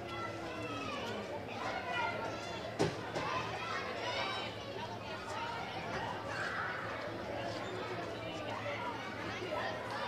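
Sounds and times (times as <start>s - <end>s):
chatter of children and adults: 0.0s - 10.0s.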